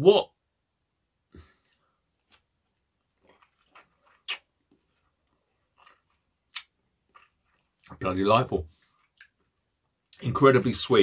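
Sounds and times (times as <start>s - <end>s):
man chewing and sucking: 1.7s - 7.9s, 8.8s - 9.6s
sharp mouth clicks: 4.1s - 4.5s, 6.5s - 6.8s.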